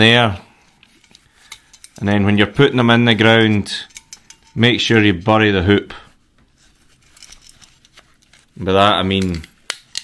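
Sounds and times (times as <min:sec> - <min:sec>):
gloves rustling: 0:00.0 - 0:10.0
light ticks of wire and metal: 0:00.8 - 0:05.4, 0:06.9 - 0:10.0.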